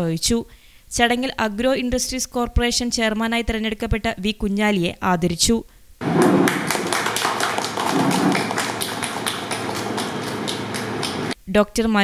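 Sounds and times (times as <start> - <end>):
people clapping: 6.0 - 11.4.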